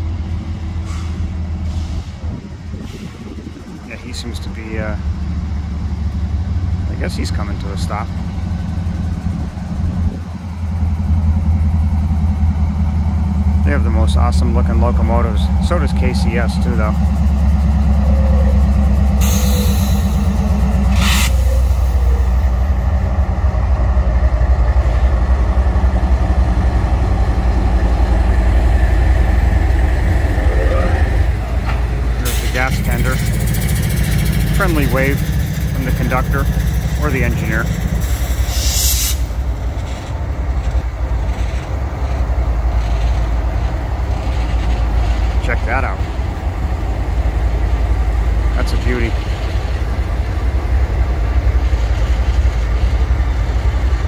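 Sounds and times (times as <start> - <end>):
locomotive engines rumbling: 0.0 - 54.0
air hiss: 38.1 - 39.3.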